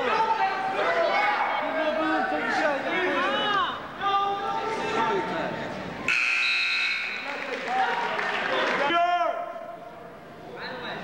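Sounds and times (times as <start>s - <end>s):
voices in a gym: 0.0s - 11.0s
scoreboard buzzer: 6.1s - 7.3s.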